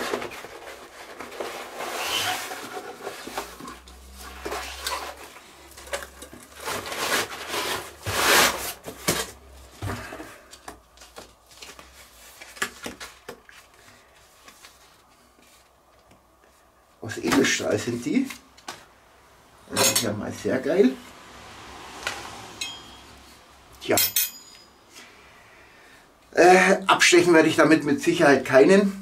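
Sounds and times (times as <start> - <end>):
packaging rustling: 0.0 - 16.1.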